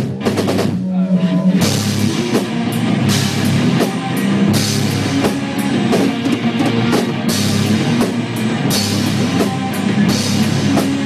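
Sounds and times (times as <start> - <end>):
drum kit with cymbals: 0.0 - 0.9, 1.6 - 11.0
bass guitar: 0.0 - 11.0
distorted electric guitars: 0.0 - 11.0.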